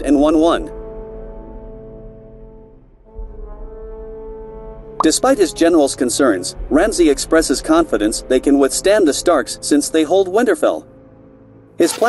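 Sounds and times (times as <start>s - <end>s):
sustained brass chord: 0.3s - 7.1s.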